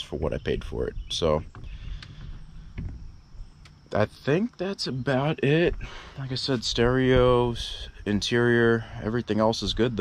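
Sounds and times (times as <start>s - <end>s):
low steady rumble: 0.2s - 10.0s
insect drone: 0.4s - 9.8s.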